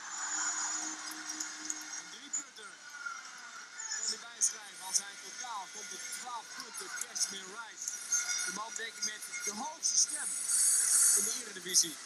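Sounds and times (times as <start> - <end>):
crowd cheering: 0.0 - 2.2.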